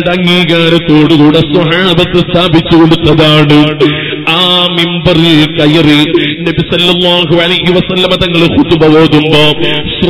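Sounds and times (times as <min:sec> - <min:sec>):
man chanting religious recitation: 0:00.0 - 0:10.0.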